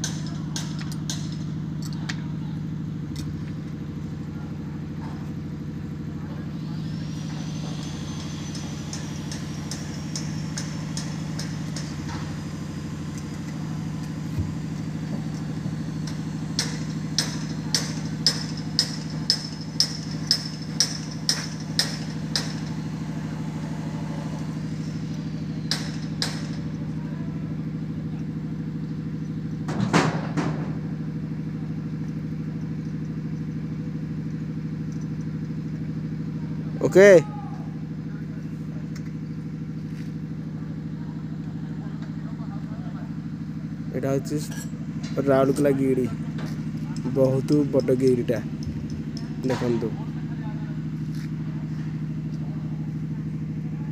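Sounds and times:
low machine hum: 0.0s - 53.9s
sharp metallic ticks: 7.8s - 12.2s, 15.4s - 22.8s, 46.5s - 49.8s.

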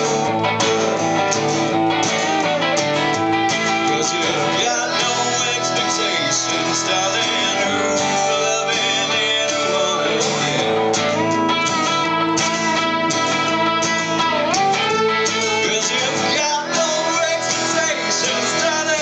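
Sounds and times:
electric guitar lead: 0.0s - 19.0s
strummed acoustic guitar: 0.0s - 19.0s.

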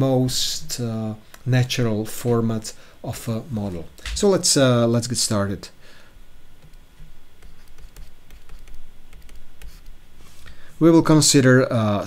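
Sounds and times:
stylus tapping and scratching on tablet: 6.6s - 10.0s.

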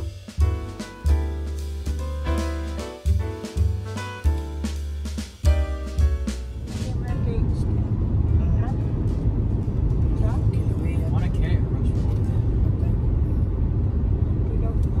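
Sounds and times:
car road noise rumble: 0.0s - 15.0s.

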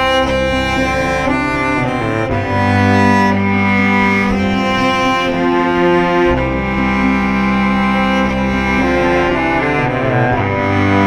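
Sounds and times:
cello bowed long notes: 0.0s - 11.0s.

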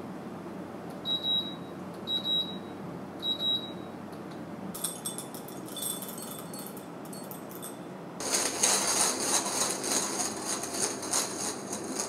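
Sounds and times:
coffee machine beeping: 1.1s - 3.9s, 8.2s - 12.0s
coffee beans clattering into grinder: 8.2s - 12.0s.

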